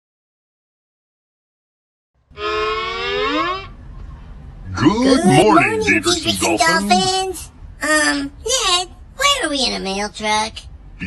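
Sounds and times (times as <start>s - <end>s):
low engine rumble: 3.7s - 11.0s.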